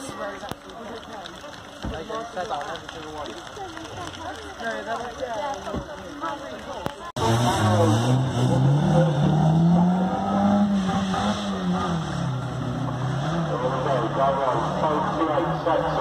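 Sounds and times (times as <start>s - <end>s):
racing car engine revving: 7.2s - 15.9s.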